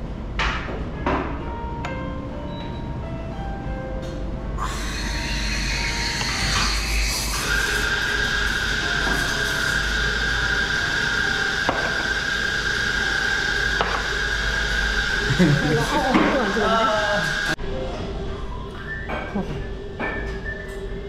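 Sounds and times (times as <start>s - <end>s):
high squeal: 4.6s - 17.6s
steam wand hissing: 4.6s - 17.6s.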